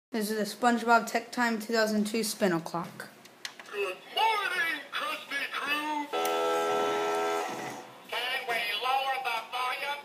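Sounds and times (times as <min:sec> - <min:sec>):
toy clock electronic chord: 0:06.1 - 0:07.9.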